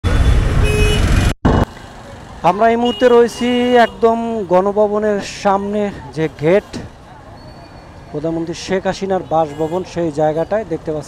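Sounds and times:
loud street traffic: 0.0s - 11.0s
horn toot: 0.2s - 1.2s.

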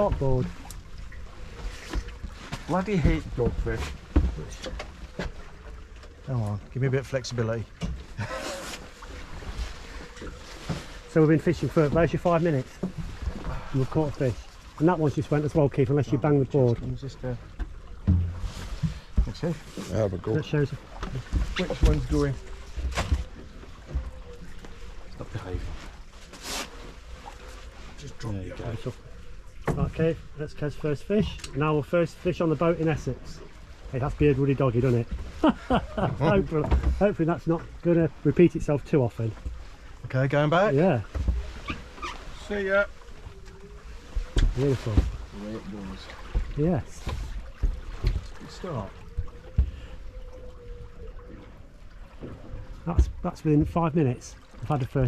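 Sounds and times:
water lapping against boat hull: 0.0s - 55.0s.

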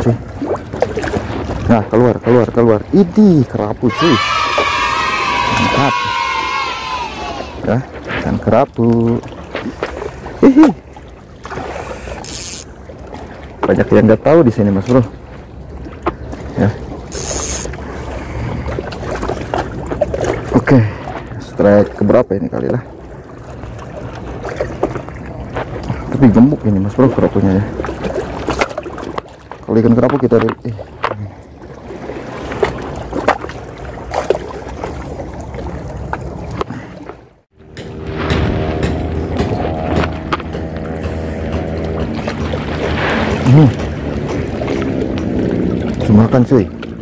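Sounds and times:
fishing line clicks and rustling: 12.2s - 12.7s, 17.1s - 17.8s
steady engine drone: 37.6s - 47.0s.

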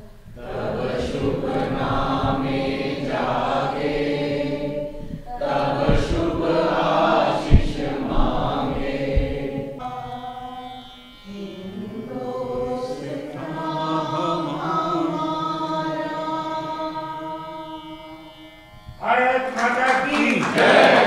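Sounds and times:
group of people singing: 0.0s - 10.7s, 11.3s - 18.2s, 20.5s - 21.0s
sharp low thump: 5.0s - 9.8s.

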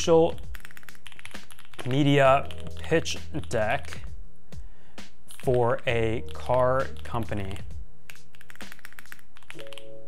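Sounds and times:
soft background music: 0.0s - 10.0s
computer keyboard typing: 0.3s - 4.0s, 6.3s - 10.0s.

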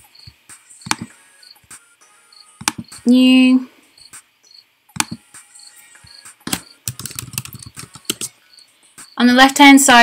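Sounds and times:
keyboard typing: 0.8s - 1.1s, 2.6s - 3.1s, 5.0s - 5.2s, 6.4s - 8.3s.

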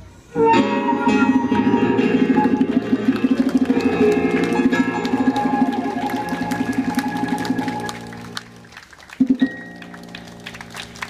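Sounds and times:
band with electric keyboard: 0.0s - 11.0s.

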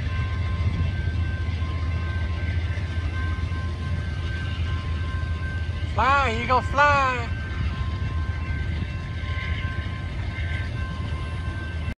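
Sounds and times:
passenger train rumble: 0.0s - 12.0s.

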